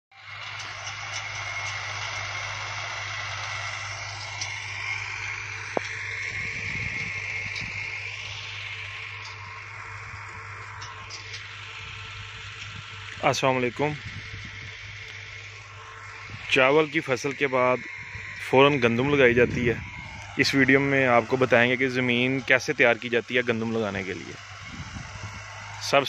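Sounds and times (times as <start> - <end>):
distant tractor engine running: 0.1 - 26.0.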